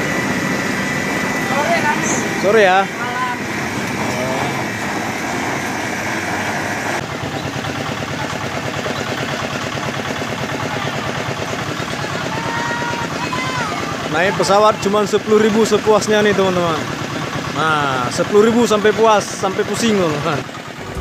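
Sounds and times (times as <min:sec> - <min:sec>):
small engine running: 0:00.0 - 0:21.0.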